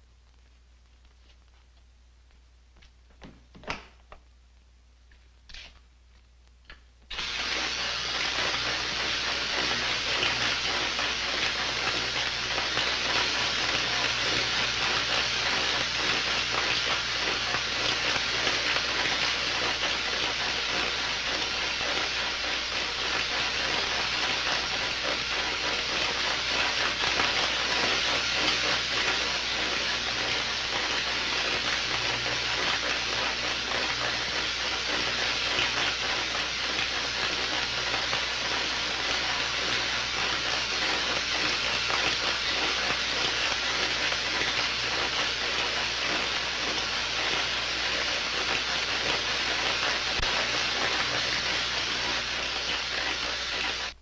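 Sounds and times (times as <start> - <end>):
electrical hissing: 7.1 - 54.0.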